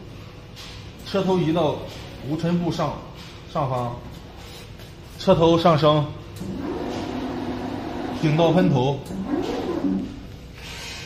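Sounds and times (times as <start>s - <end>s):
printer motor humming: 6.4s - 8.5s.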